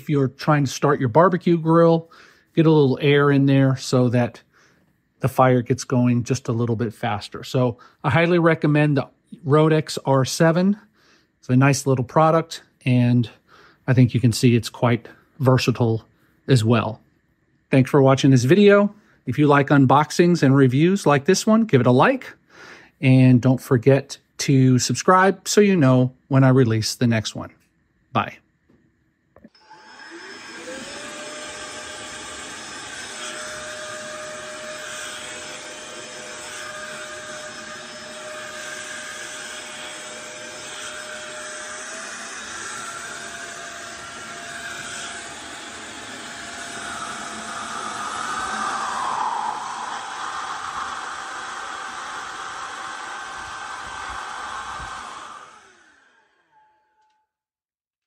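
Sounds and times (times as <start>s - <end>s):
air duster motor whining: 29.4s - 57.0s
rush of air: 47.9s - 55.1s.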